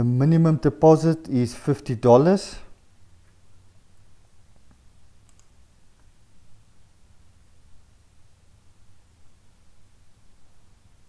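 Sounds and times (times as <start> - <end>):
computer mouse clicks: 5.2 - 5.6.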